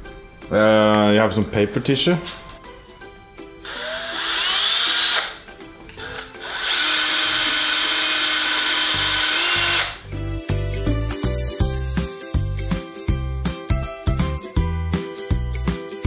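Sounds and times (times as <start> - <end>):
background music with beat: 2.0 - 3.8, 10.0 - 16.0
cordless drill motor whining: 3.7 - 5.4, 6.0 - 10.0.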